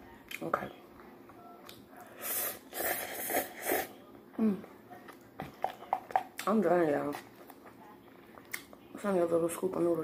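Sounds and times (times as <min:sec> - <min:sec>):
person slurping noodles: 0:02.2 - 0:03.9.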